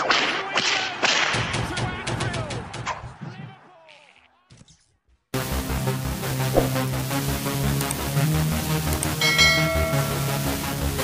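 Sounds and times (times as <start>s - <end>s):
low thuds: 6.5s - 6.9s.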